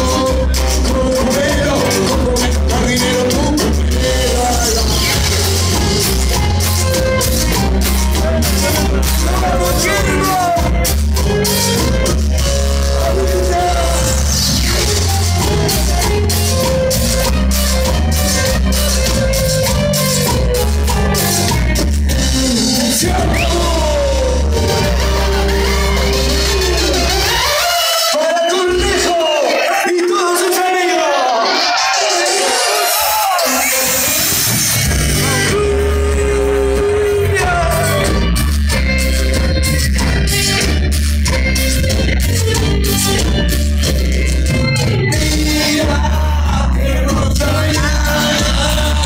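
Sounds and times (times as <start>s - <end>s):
heavy bass: 0.0s - 29.2s, 31.4s - 49.0s
crowd voices: 0.0s - 49.0s
live rock band with singer: 0.0s - 49.0s.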